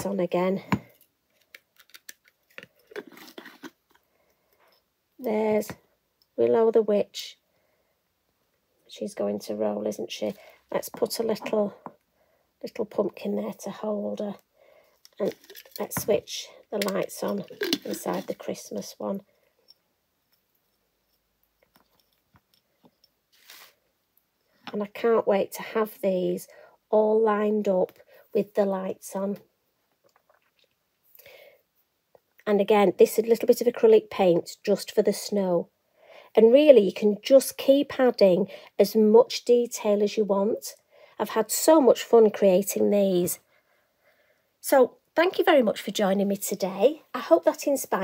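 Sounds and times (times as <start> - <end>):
soft brushing: 23.3 - 23.8.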